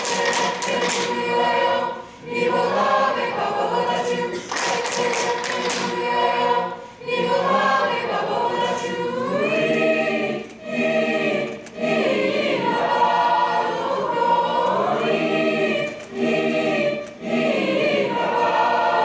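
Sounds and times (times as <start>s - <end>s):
mixed choir singing in harmony: 0.0s - 19.0s.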